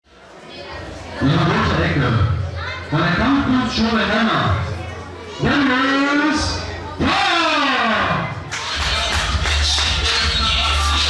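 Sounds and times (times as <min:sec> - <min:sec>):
announcer's voice through microphone: 0:01.2 - 0:08.4
music: 0:08.4 - 0:11.0.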